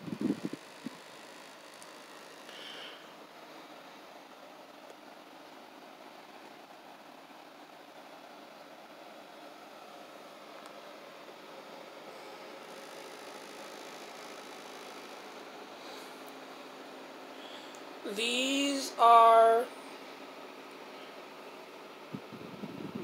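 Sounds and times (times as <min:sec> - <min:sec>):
low hum with hiss: 0:00.0 - 0:23.0.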